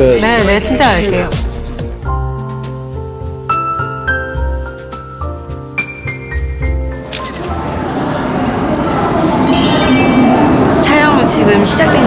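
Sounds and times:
crowd chatter: 7.6 - 12.0
high ringing: 9.5 - 10.8.

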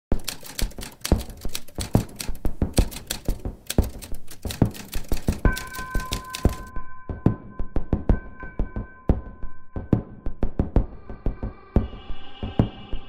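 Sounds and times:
typewriter keys striking: 0.1 - 6.7.

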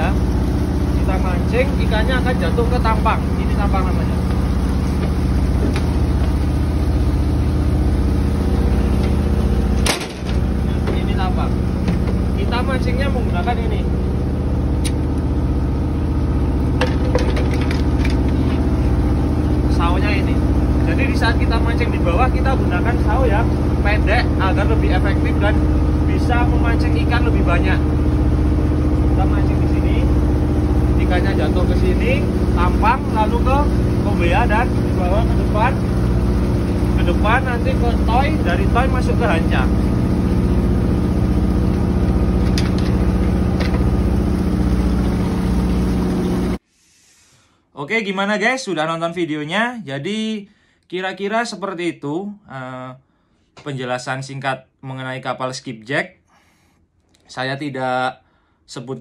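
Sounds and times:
boat machinery hum: 0.0 - 46.7.

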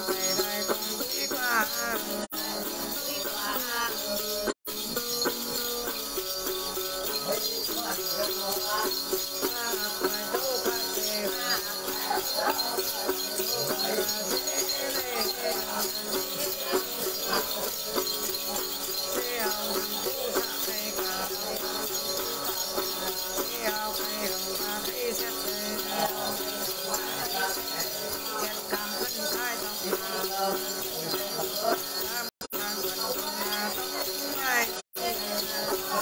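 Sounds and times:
jingle bells shaken: 0.0 - 36.0
woman singing: 0.0 - 36.0.

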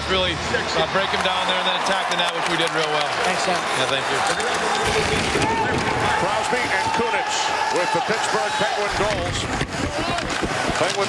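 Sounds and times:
crowd of voices: 0.0 - 11.0.

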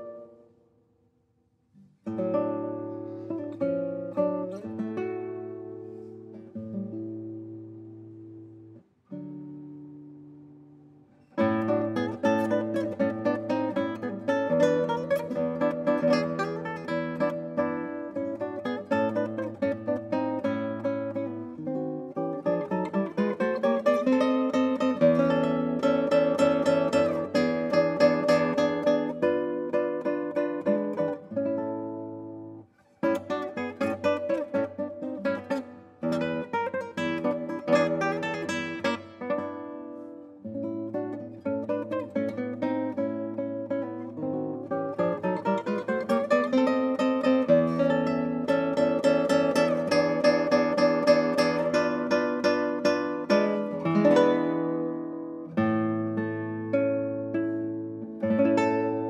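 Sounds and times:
fingerstyle classical guitar: 0.0 - 0.9, 1.7 - 59.0.

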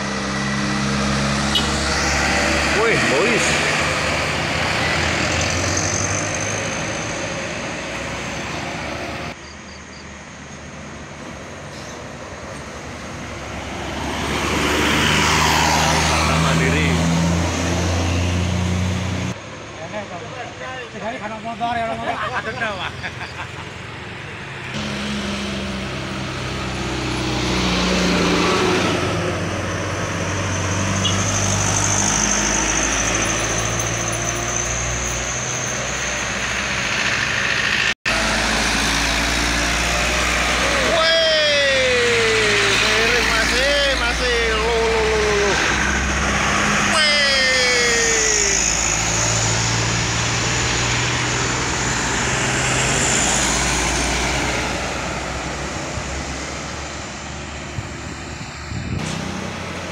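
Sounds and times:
trucks passing at speed: 0.0 - 59.9
tyre and road noise: 0.0 - 59.9.

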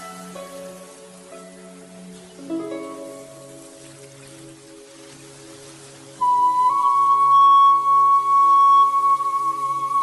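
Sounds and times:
flute long note: 6.2 - 10.0.

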